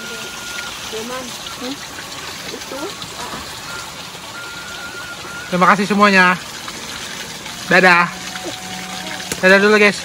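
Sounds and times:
thin steady tone: 0.0s - 1.8s, 2.5s - 10.0s
running water rushing: 0.0s - 10.0s.

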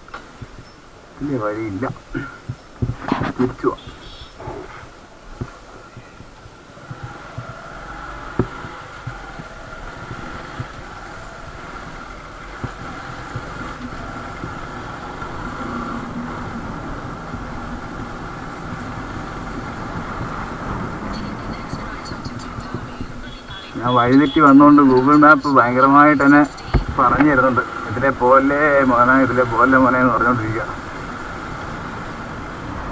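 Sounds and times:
sharp knocks over bumps: 0.0s - 0.8s, 1.8s - 23.3s
motorcycle engine running: 2.0s - 29.2s.

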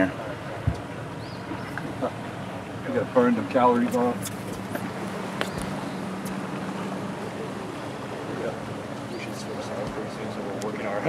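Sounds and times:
boat motor humming: 0.0s - 11.0s
water washing along hull: 0.0s - 11.0s
wind buffeting microphone: 0.0s - 11.0s.

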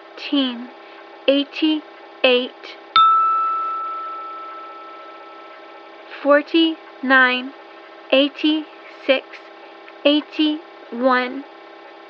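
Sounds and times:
faint steady hum: 0.0s - 12.0s
struck chime ringing: 3.0s - 6.1s.

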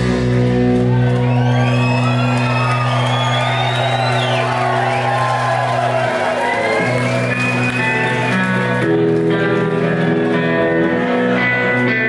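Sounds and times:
ringing electric guitar and bass: 0.0s - 12.0s
crowd whooping and cheering: 0.1s - 12.0s.

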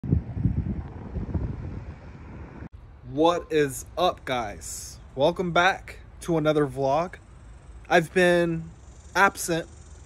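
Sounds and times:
wind buffeting microphone: 0.0s - 2.7s.

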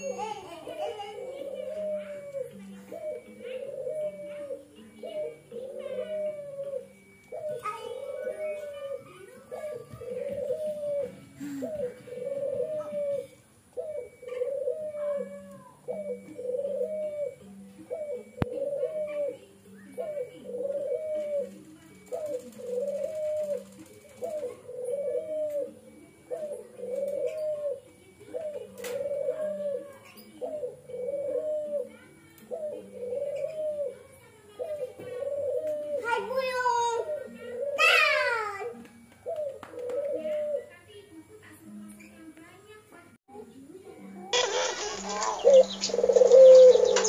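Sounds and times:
dove cooing: 0.0s - 41.4s, 44.2s - 47.0s.

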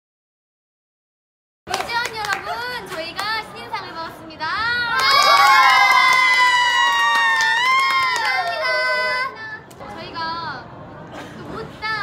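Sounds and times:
young women shouting and cheering: 4.8s - 9.4s.

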